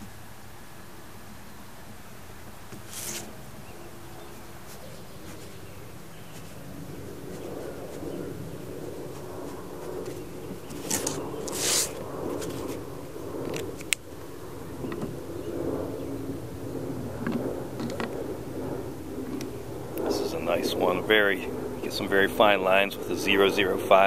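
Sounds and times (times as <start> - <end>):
low background hum: 0.0 - 24.0
paper rustling on a table: 2.7 - 3.3, 4.6 - 5.6, 9.0 - 12.8.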